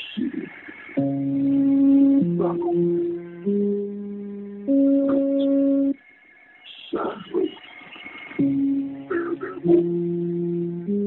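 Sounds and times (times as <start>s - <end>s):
electronic tune over phone line: 0.0s - 11.0s
faint high steady tone: 0.0s - 11.0s.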